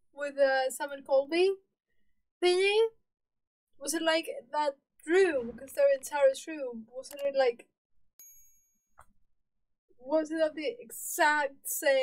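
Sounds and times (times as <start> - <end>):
click: 7.0 - 7.4
high bell ding: 8.2 - 9.0.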